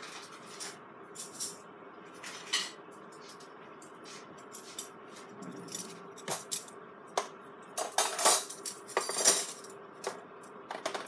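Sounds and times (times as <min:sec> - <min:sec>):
kitchen utensils and crockery clinking: 0:02.2 - 0:11.0.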